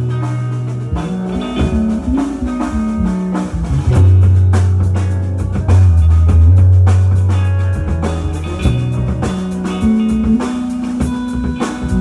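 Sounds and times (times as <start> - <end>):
drum kit with cymbals: 0.0 - 12.0
electric guitars: 0.0 - 12.0.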